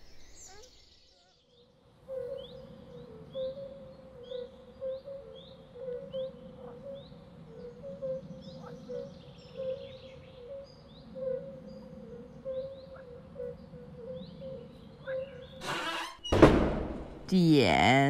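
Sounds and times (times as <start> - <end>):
small birds chirping: 0.0 - 15.6.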